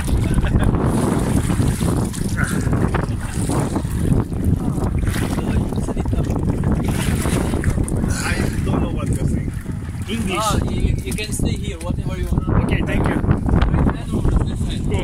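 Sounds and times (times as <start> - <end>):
water sloshing and splashing: 0.0 - 15.0
wind buffeting microphone: 0.0 - 15.0.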